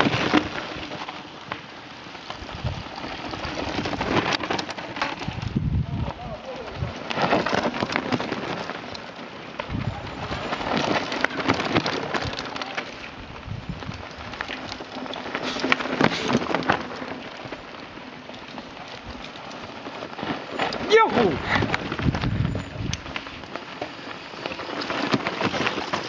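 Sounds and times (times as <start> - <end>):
bike tyres crunching over dirt: 0.0 - 26.0
small clicks and rattles: 0.0 - 26.0
tyres brushing through dry grass: 0.0 - 26.0.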